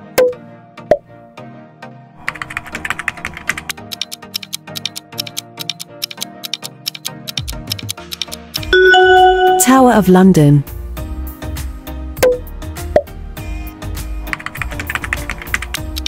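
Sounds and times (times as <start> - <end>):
background music: 0.0 - 16.0
keyboard typing clicks: 3.5 - 9.7.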